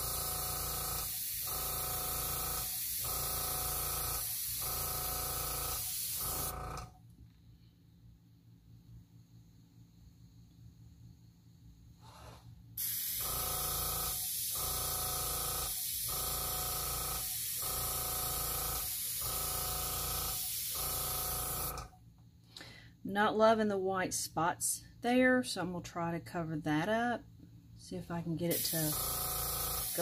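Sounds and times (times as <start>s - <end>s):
airbrush hissing air: 12.0s - 13.3s, 28.5s - 30.0s.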